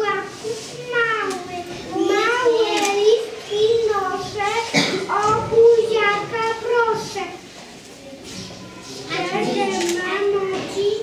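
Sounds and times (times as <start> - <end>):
young children speaking: 0.0 - 11.0.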